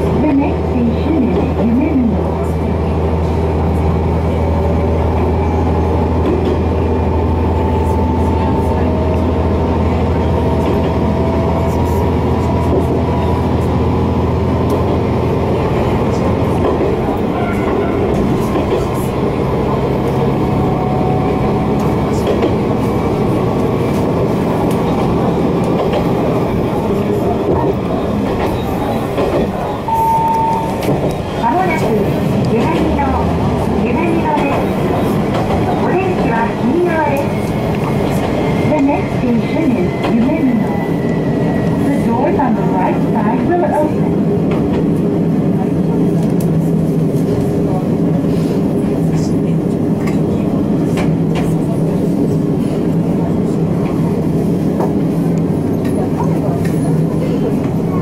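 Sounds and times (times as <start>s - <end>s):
voices in train car: 0.0s - 58.0s
wheels rumbling on rails: 0.0s - 58.0s.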